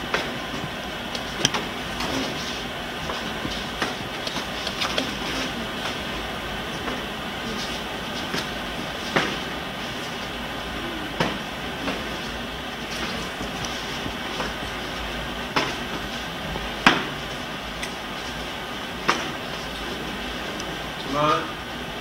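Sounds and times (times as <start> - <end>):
steady hiss: 0.0 - 22.0.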